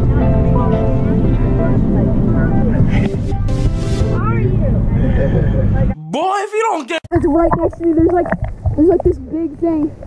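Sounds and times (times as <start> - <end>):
background music: 0.0 - 4.7
voices: 4.2 - 9.9.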